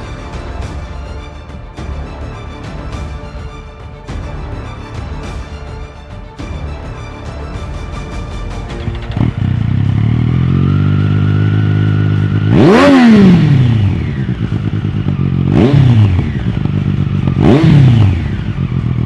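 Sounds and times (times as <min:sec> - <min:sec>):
motorcycle engine idling and revving: 0:00.0 - 0:05.4, 0:06.4 - 0:19.0.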